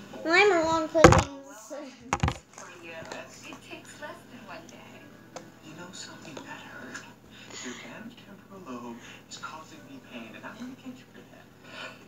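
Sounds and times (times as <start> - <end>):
thumps on laptop: 1.0 - 1.3, 2.1 - 2.4.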